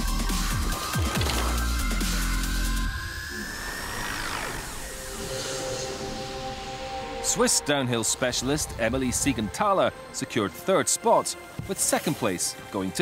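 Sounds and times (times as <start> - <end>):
rising synth sweep: 2.0 - 7.2.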